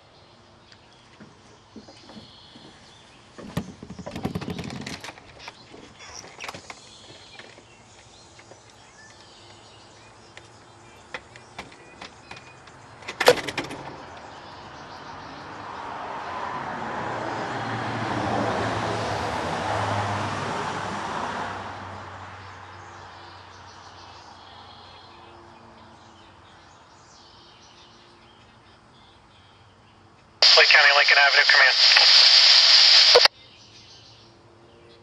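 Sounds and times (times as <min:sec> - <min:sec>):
vehicle passing by: 0:13.7 - 0:28.4.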